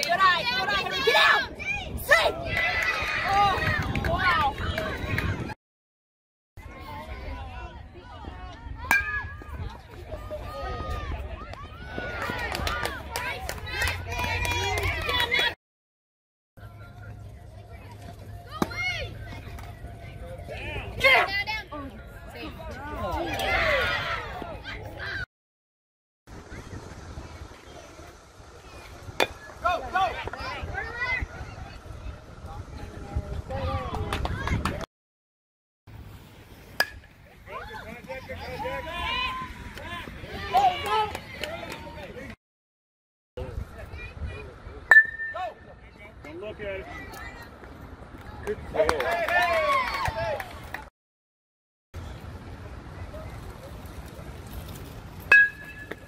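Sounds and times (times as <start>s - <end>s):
spectators shouting and cheering: 0.0s - 5.5s, 6.6s - 15.5s, 18.2s - 25.2s, 37.5s - 42.3s, 48.2s - 50.8s
bat hitting baseball: 8.9s - 9.5s, 36.8s - 37.1s, 44.9s - 45.5s, 55.3s - 56.0s.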